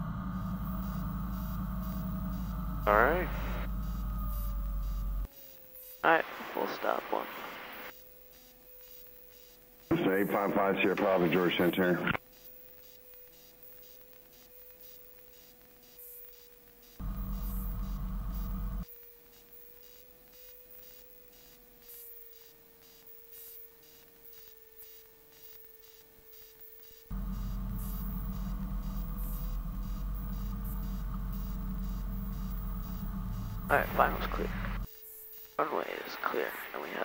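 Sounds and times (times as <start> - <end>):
faint electrical whine: 0.0 - 37.0.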